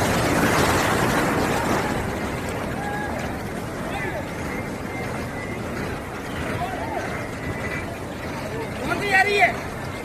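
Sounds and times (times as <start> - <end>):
floodwater rushing: 0.0 - 10.0
faint distant voices: 1.1 - 10.0.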